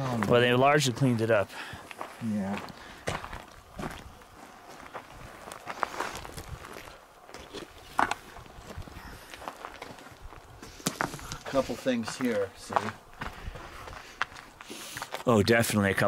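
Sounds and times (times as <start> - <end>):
footsteps on gravel: 0.0 - 15.3.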